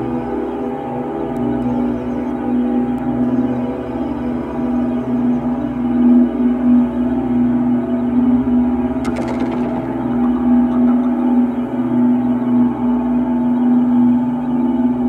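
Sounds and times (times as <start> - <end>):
dark ambient drone music: 0.0 - 15.0.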